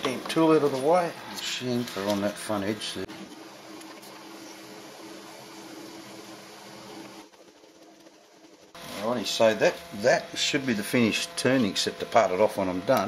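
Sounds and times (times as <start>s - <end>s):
metal lathe running: 0.0s - 3.1s, 8.8s - 13.0s.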